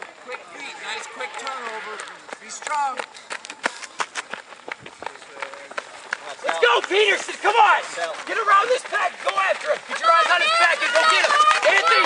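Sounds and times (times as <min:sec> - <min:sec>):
running footsteps on gravel: 0:00.0 - 0:12.0
man shouting: 0:06.5 - 0:12.0.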